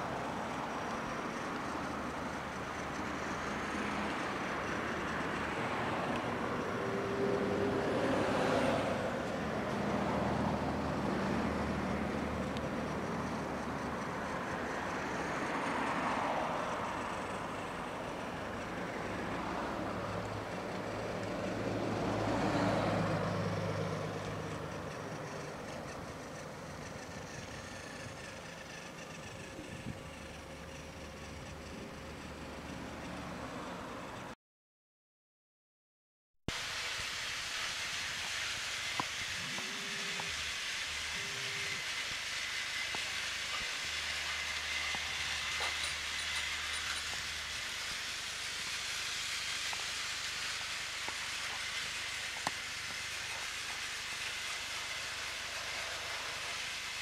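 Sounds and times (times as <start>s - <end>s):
cars passing: 0.0s - 34.4s
low engine hum: 0.0s - 34.4s.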